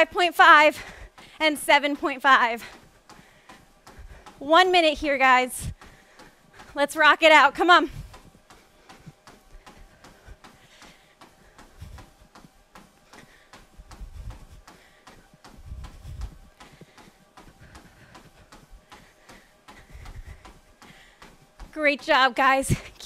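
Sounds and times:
running footfalls on treadmill: 0.0 - 23.0.

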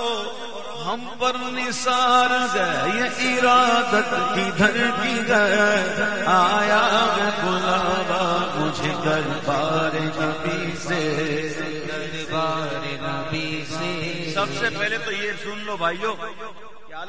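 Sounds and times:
men chanting devotional poem: 0.0 - 17.0.

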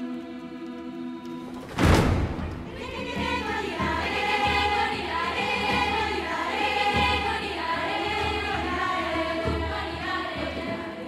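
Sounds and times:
choir singing sustained chords: 0.0 - 11.0
low percussion beats: 1.6 - 11.0.

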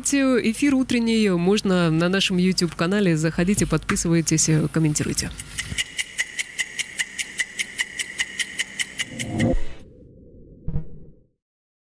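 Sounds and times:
fast electronic ticking: 5.3 - 9.6.

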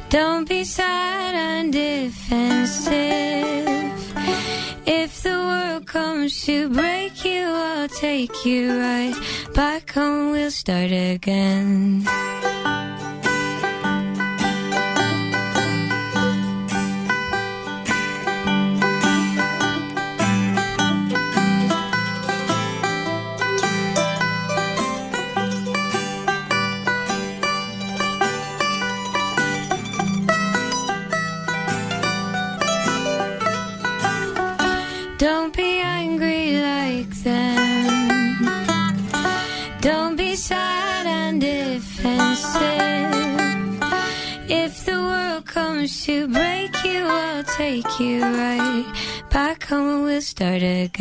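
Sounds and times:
banjo picking: 0.0 - 51.0
mandolin picking: 0.0 - 51.0
low accompaniment: 12.1 - 44.0.

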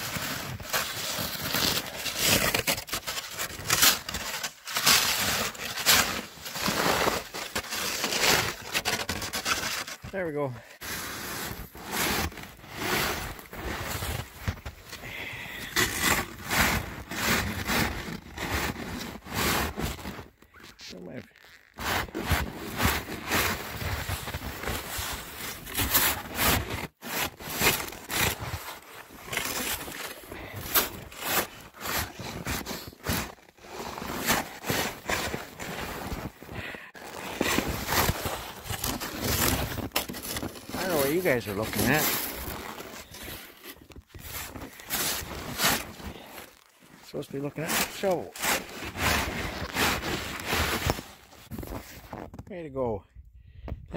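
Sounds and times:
shovel scraping through snow: 0.0 - 20.3, 21.8 - 52.3.

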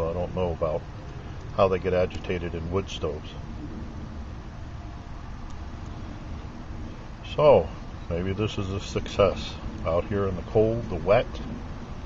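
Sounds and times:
stove burning with hiss: 0.0 - 12.0.

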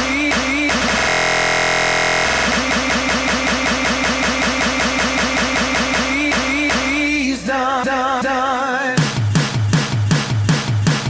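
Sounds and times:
looped pop track stutter: 0.0 - 11.0.

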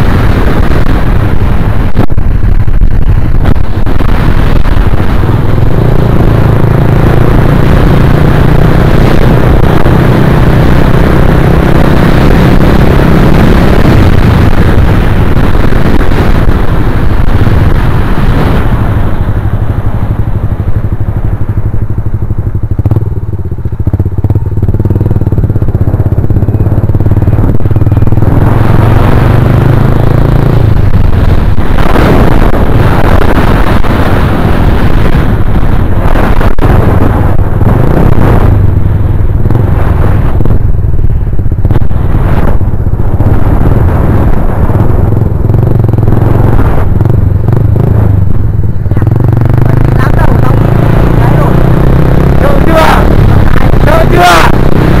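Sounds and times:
motorcycle engine running: 0.0 - 55.0
wind rush on microphone: 0.0 - 55.0.

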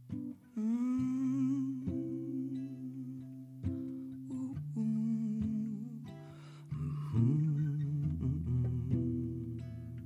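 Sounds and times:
acoustic guitar picked slowly: 0.0 - 10.0
man humming wordlessly: 0.6 - 3.3.

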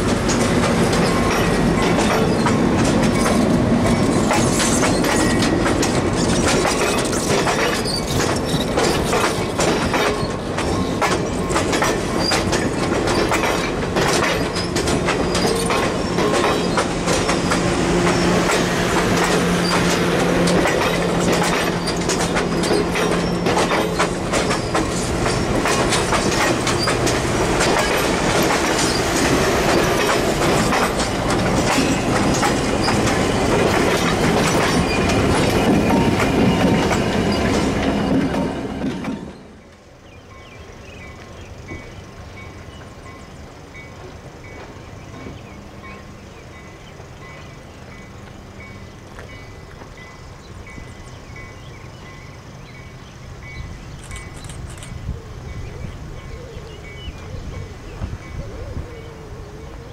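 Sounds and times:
train wheels clicking over rail joints: 0.0 - 59.0
train wheel squeal: 0.0 - 59.9.

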